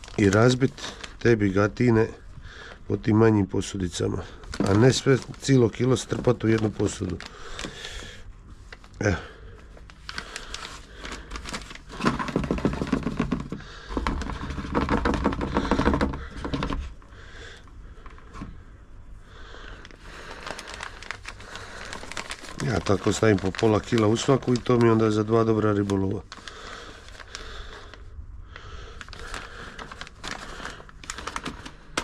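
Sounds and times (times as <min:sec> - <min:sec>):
plastic bag crinkling: 0:00.0 - 0:18.4, 0:19.4 - 0:32.0.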